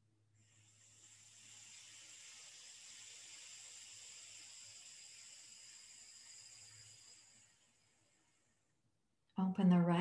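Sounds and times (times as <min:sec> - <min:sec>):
nasal breath hiss: 0:00.3 - 0:08.9.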